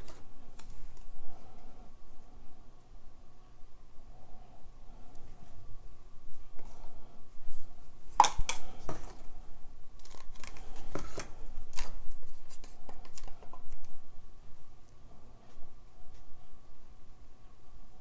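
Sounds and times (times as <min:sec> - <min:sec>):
plastic cups handled on table: 0:08.2 - 0:09.3, 0:10.0 - 0:13.9.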